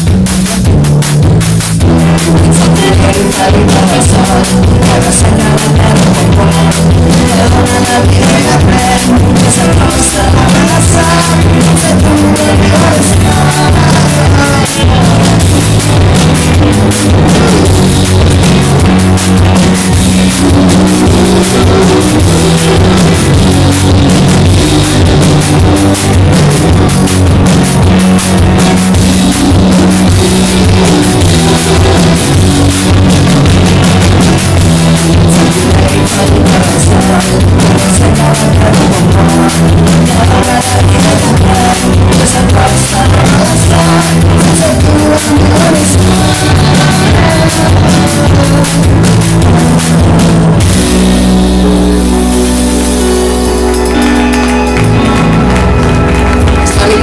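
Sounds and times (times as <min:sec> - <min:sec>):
drum kit: 0:00.0 - 0:57.0
electric bass: 0:00.0 - 0:57.0
electric guitar: 0:00.0 - 0:57.0
electric keyboard: 0:00.0 - 0:57.0
live rock band: 0:00.0 - 0:57.0.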